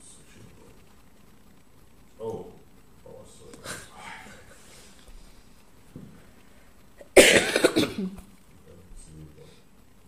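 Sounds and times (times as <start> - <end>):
person coughing: 7.0 - 8.2.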